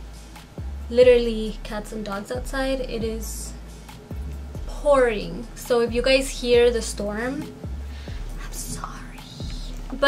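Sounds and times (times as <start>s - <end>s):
faint background music: 0.0s - 10.0s
woman whispering: 8.4s - 10.0s.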